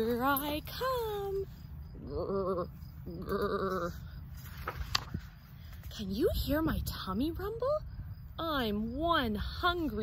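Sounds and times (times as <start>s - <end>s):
woman growling: 2.0s - 4.1s
book page turning: 4.3s - 5.8s.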